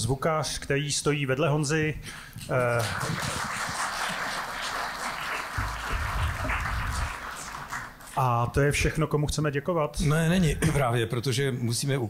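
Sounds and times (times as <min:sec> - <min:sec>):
audience applauding: 0:02.4 - 0:08.4.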